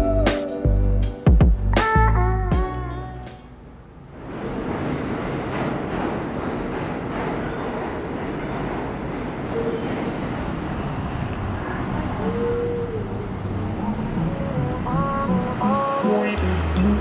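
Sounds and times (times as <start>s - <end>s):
subway train rumble and rattle: 3.6s - 17.0s.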